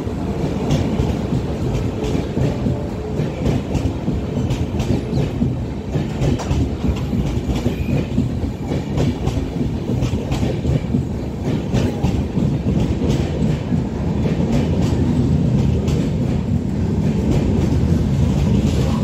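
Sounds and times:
train rolling past: 0.0 - 19.0.

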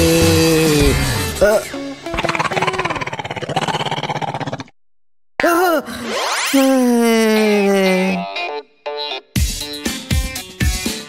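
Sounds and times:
cartoon stomach growl: 2.1 - 4.8.

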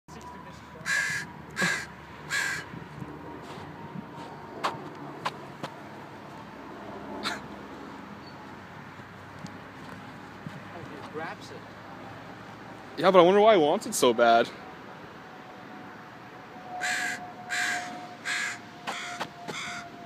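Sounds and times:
bird harsh calls: 0.9 - 2.7, 16.8 - 19.9.

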